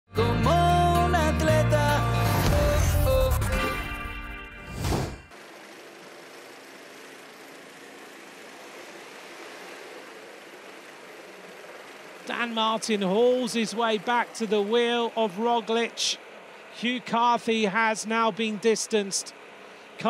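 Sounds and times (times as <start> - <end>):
faint engine hum: 5.2 - 20.0
steady outdoor hiss: 5.3 - 20.0.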